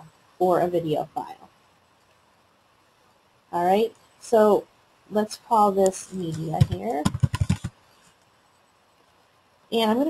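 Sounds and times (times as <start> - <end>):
computer keyboard typing: 6.1 - 7.8.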